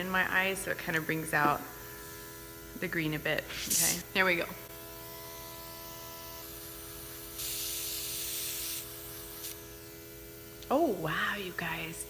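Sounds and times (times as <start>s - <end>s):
airbrush compressor hum: 0.0s - 12.0s
airbrush air hiss: 3.4s - 4.0s, 7.3s - 9.8s.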